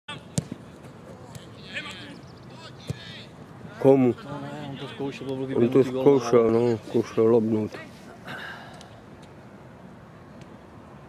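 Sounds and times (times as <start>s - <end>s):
football being kicked: 0.3s - 0.6s.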